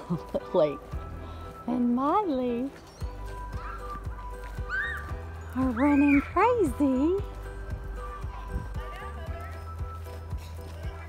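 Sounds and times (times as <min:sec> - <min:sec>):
faint background music: 0:00.0 - 0:11.0
high-pitched cries: 0:03.4 - 0:06.7.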